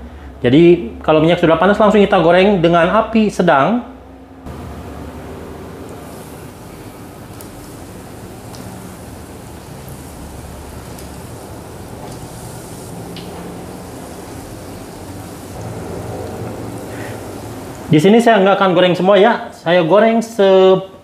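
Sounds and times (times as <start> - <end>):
croquettes sizzling in hot oil: 5.6 - 18.0.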